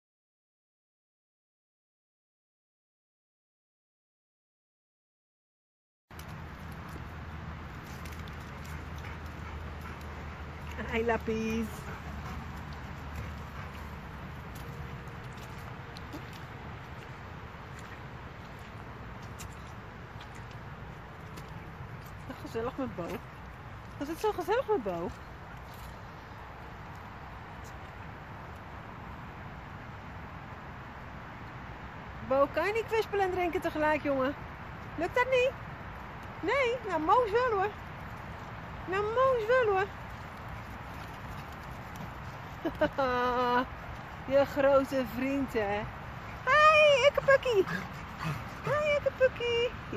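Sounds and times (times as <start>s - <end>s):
footsteps on wet grass: 6.1s - 22.4s
outdoor background noise: 6.1s - 49.9s.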